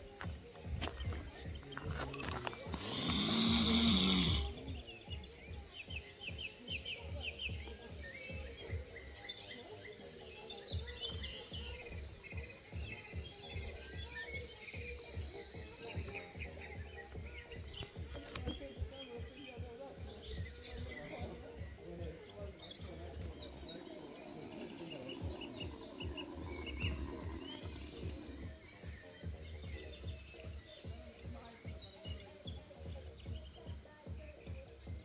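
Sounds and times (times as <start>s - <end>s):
small birds chirping: 0.0s - 35.0s
loud rough hissing: 2.7s - 4.6s.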